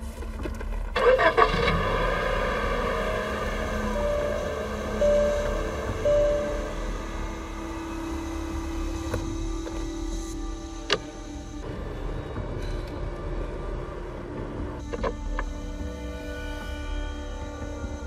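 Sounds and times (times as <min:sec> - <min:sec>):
car engine starting and running: 0:00.0 - 0:16.1
film score music: 0:00.0 - 0:18.0.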